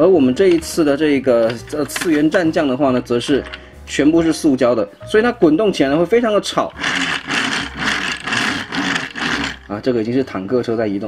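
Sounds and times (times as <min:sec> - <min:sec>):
plastic wheels rumbling on table: 0:00.2 - 0:03.6, 0:06.4 - 0:10.0.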